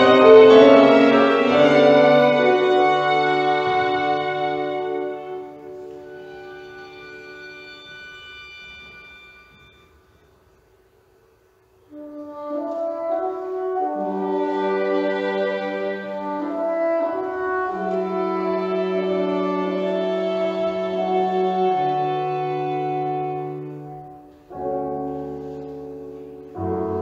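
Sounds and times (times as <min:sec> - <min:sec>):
held violin and horn notes: 0:00.0 - 0:10.1, 0:11.9 - 0:25.7
soft bassoon and piano melody: 0:00.0 - 0:10.1, 0:11.9 - 0:27.0
held chord from chamber ensemble: 0:00.0 - 0:10.4.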